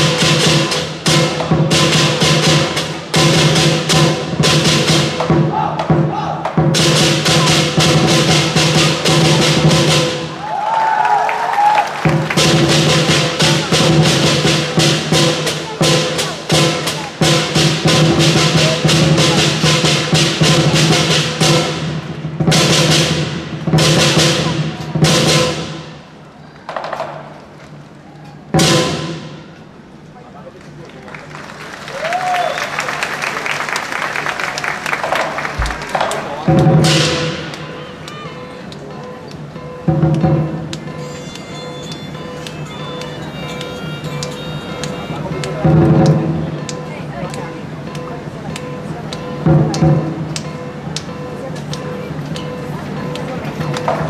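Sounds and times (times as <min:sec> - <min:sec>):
drum gong and cymbals playing: 0:00.0 - 0:10.5, 0:12.0 - 0:26.3, 0:28.5 - 0:29.8, 0:35.1 - 0:54.0
steady ringing: 0:35.6 - 0:54.0.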